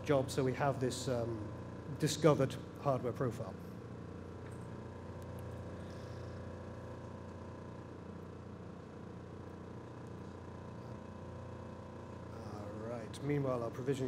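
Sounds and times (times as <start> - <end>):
steady room hum: 0.0 - 14.0.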